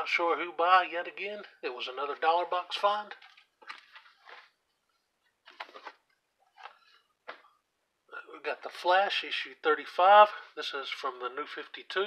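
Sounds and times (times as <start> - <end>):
plastic bags rustling: 5.4 - 6.7.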